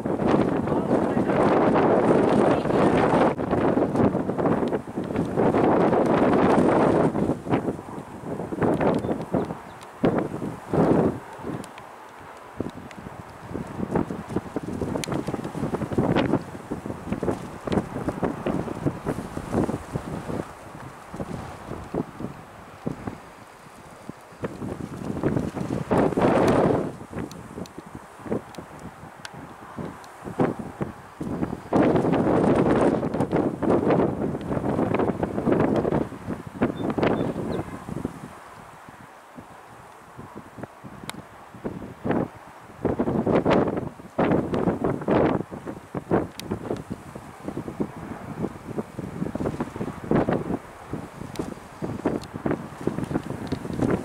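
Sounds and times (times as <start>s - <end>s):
wind gusting across microphone: 0.0s - 54.0s.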